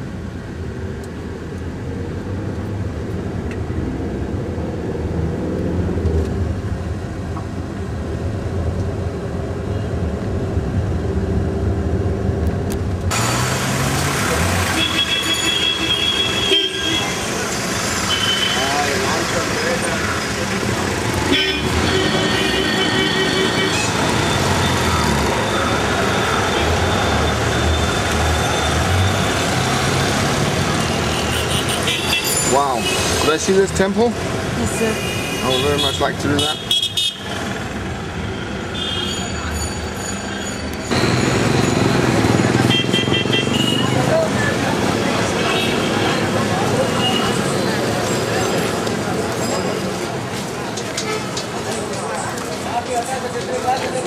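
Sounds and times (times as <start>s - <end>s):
car engine and road noise: 0.0s - 54.0s
vehicle horns tooting: 14.6s - 17.4s, 18.0s - 19.0s, 21.2s - 28.9s, 30.8s - 33.4s, 34.7s - 37.4s, 38.3s - 44.3s.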